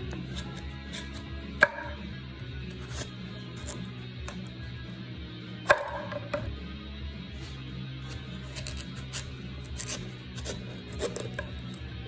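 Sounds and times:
knife slicing through squash: 0:00.0 - 0:01.3, 0:02.7 - 0:04.5, 0:08.0 - 0:11.7.

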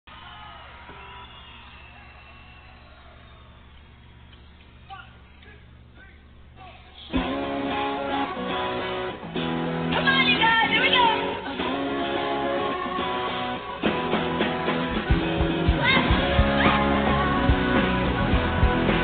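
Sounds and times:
electric guitars strumming: 0:07.1 - 0:19.0
rock band playing loudly: 0:07.1 - 0:19.0.

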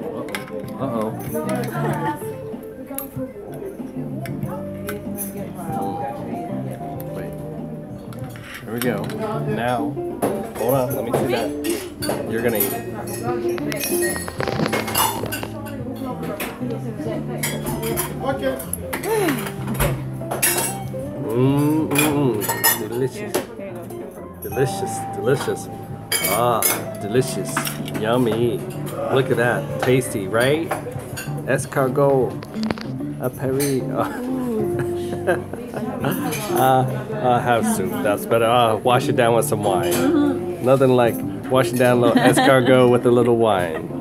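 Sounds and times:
cutlery and dishes clinking: 0:00.0 - 0:02.1, 0:08.0 - 0:16.8, 0:17.4 - 0:34.9
background music: 0:00.0 - 0:44.0.

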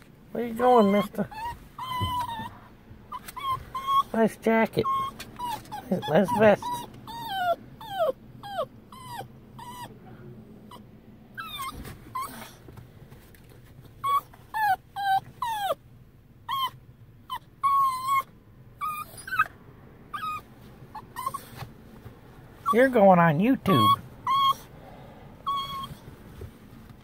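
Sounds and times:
small dog whimpering: 0:00.5 - 0:09.9, 0:10.7 - 0:12.6, 0:14.0 - 0:15.8, 0:16.5 - 0:21.6, 0:23.6 - 0:24.7, 0:25.4 - 0:26.0.

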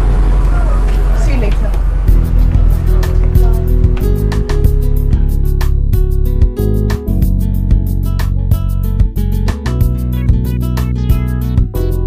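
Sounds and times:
low drone: 0:00.0 - 0:08.1.

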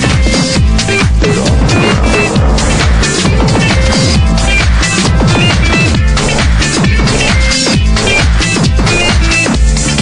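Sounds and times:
house music: 0:00.5 - 0:09.8.

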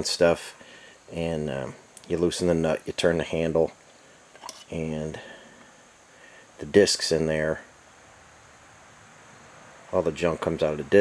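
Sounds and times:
man speaking: 0:00.0 - 0:03.8, 0:04.7 - 0:05.4, 0:06.6 - 0:07.7, 0:09.9 - 0:11.0
faint room hiss: 0:00.0 - 0:11.0.

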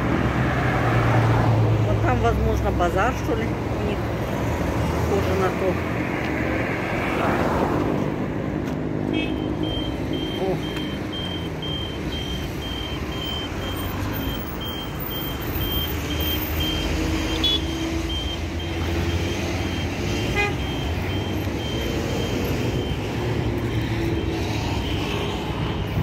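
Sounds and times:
street traffic rumble: 0:00.0 - 0:26.0
crossing signal beeping: 0:09.2 - 0:26.0.

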